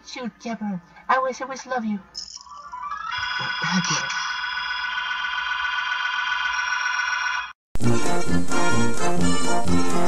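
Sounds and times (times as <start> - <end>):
steady high electronic tone: 2.2 - 7.6.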